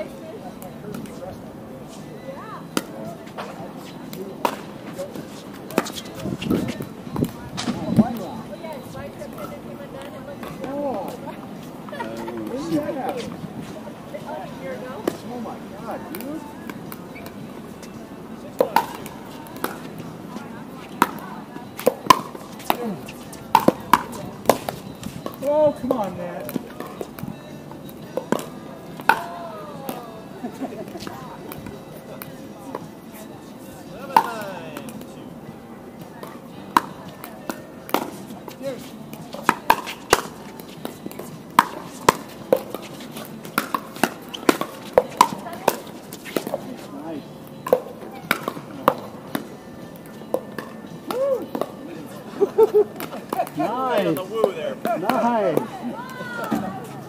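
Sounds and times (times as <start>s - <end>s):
voices calling out: 51.0s - 57.0s.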